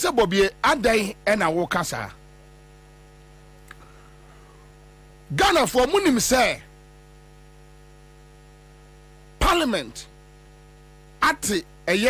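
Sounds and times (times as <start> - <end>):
electrical mains hum: 0.0 - 12.0
faint click: 3.6 - 3.9.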